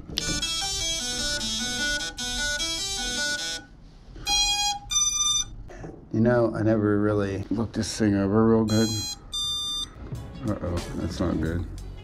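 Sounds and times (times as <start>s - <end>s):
stepped beeping notes from motors: 0.1s - 5.6s, 8.7s - 10.0s
long beeps: 4.3s - 5.6s, 8.7s - 10.0s.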